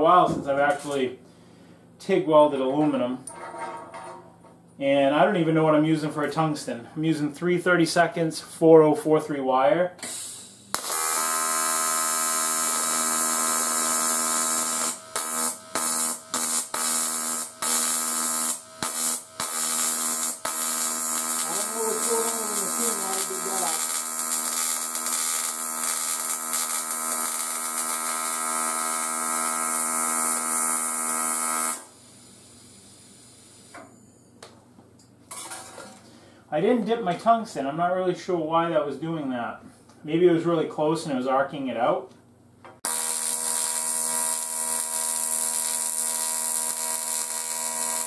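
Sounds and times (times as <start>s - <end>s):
welding arc buzzing: 10.1s - 33.8s, 42.8s - 48.0s.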